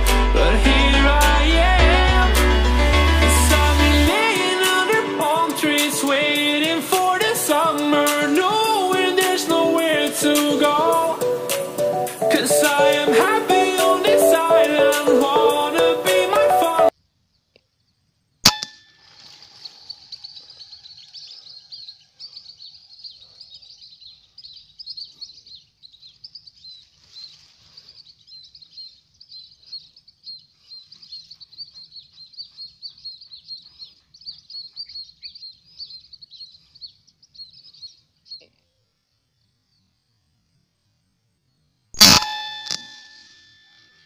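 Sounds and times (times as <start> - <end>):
high-pitched pulsing chirping chorus: 0.0 - 16.9, 19.2 - 38.5.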